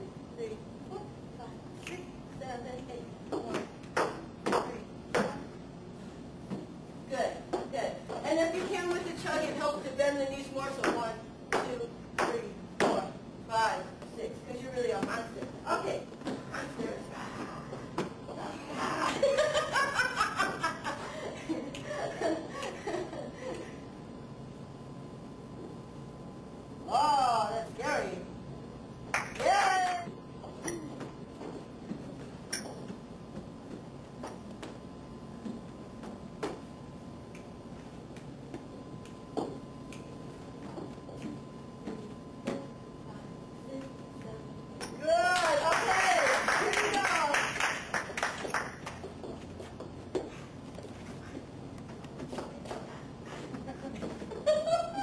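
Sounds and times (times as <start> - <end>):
faint steady hum: 0.0 - 55.0
woman counting aloud: 26.9 - 28.3, 29.4 - 30.2, 43.6 - 47.5.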